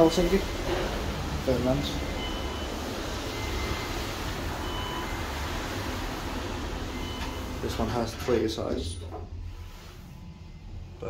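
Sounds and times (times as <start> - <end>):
elevator doors closing: 0.0 - 9.8
steady low rumble: 0.0 - 11.0.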